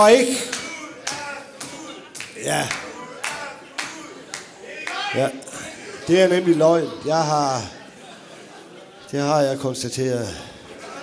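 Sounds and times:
sharp hand claps: 0:00.4 - 0:05.0.

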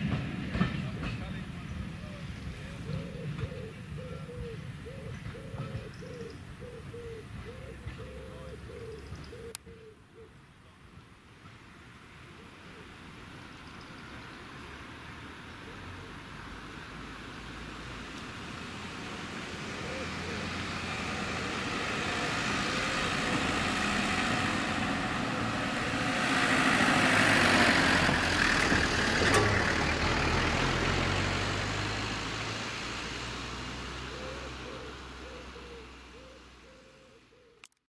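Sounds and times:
vehicles driving past: 0:00.0 - 0:37.6.

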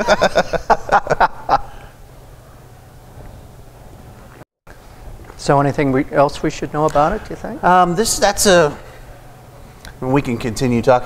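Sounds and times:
men laughing heartily: 0:00.0 - 0:02.0.

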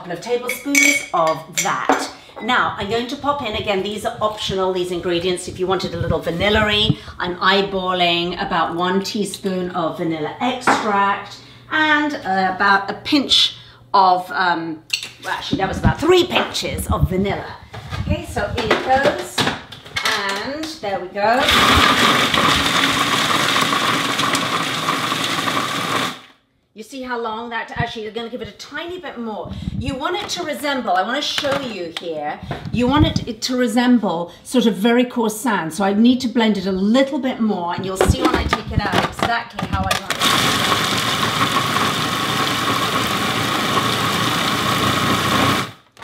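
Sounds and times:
food processor chopping nuts: 0:21.4 - 0:26.3, 0:40.0 - 0:45.8.

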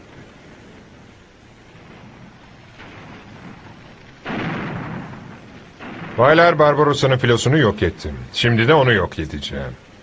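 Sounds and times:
steady hiss: 0:00.0 - 0:10.0
cannon boom: 0:01.8 - 0:08.3.

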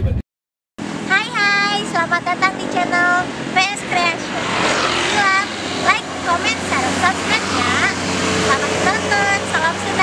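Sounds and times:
road traffic noise: 0:00.8 - 0:10.0
vehicle passing: 0:00.8 - 0:10.0
young woman speaking: 0:01.1 - 0:04.5, 0:05.1 - 0:10.0.

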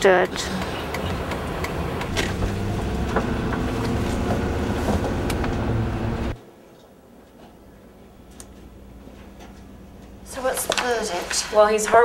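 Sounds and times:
engine and road rumble: 0:00.0 - 0:06.4.

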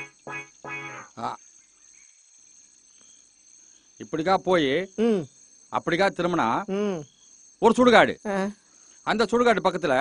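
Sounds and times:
insects chirring: 0:00.0 - 0:10.0.

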